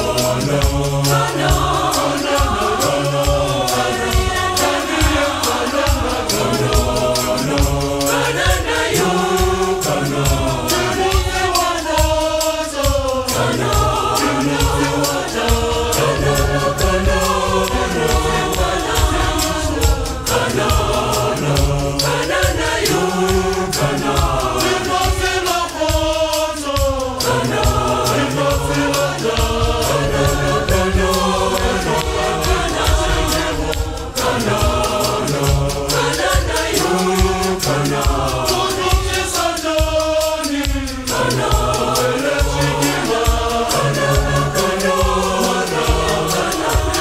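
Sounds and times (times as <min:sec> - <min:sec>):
choir singing in harmony: 0:00.0 - 0:47.0
percussive beat: 0:00.0 - 0:47.0.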